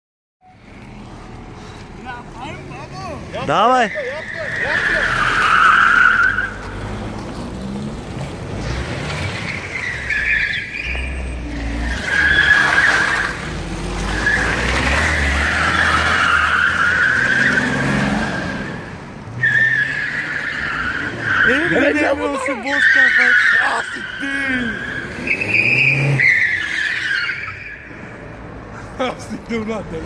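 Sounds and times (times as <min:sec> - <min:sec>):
car tyres squealing: 0:00.5 - 0:29.2
car engine under load: 0:04.8 - 0:21.4.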